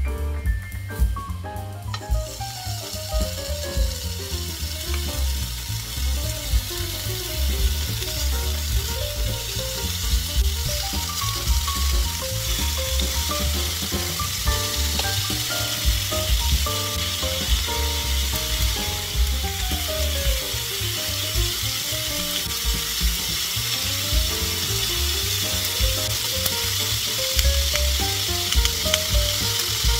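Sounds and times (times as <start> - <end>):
background music with a beat: 0.0 - 29.9
meat sizzling in a frying pan: 1.8 - 29.9.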